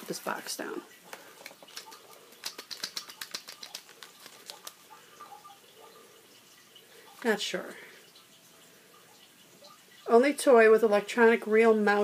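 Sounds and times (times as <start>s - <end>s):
plastic packaging crackling: 0.0s - 4.9s.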